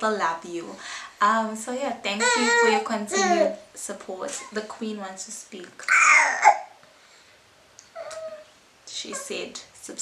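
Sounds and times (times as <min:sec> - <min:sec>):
baby cooing: 0:02.2 - 0:03.6, 0:05.9 - 0:06.7, 0:07.9 - 0:08.5.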